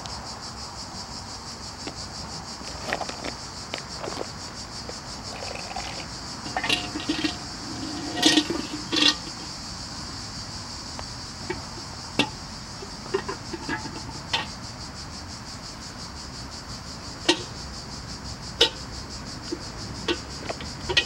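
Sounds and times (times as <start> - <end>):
insects chirring: 0.0 - 21.0.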